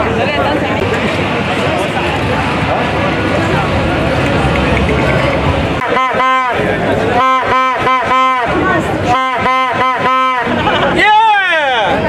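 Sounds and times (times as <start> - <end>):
crowd chattering: 0.0 - 12.0
plastic stadium horn blasts: 5.8 - 10.8.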